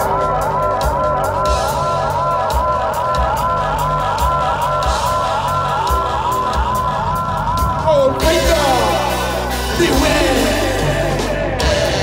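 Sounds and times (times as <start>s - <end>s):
crowd noise in a hall: 0.0s - 12.0s
live ska band playing: 0.0s - 12.0s.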